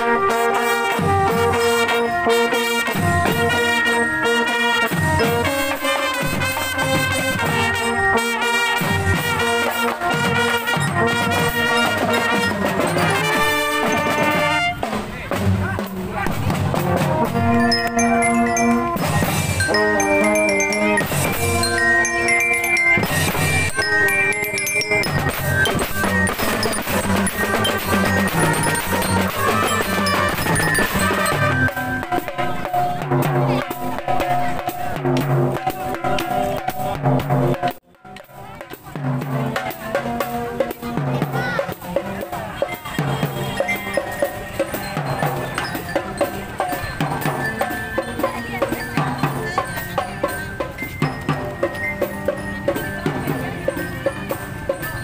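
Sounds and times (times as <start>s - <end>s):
trumpets playing held notes: 0.0s - 15.0s, 16.8s - 32.8s
cymbals: 0.0s - 55.0s
marching drums: 0.0s - 55.0s
glockenspiel melody: 3.1s - 9.4s, 10.0s - 14.7s, 17.2s - 34.8s, 42.0s - 55.0s.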